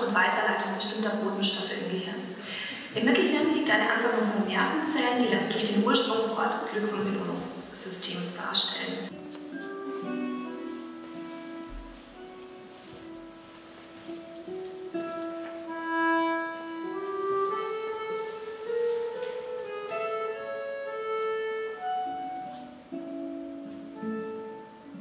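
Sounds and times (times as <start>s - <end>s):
classical guitar: 8.8s - 25.0s
accordion: 15.0s - 22.7s.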